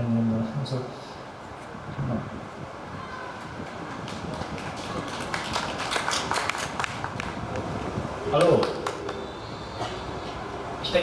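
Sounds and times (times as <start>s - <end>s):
small crowd clapping: 3.4s - 7.4s, 8.4s - 9.3s.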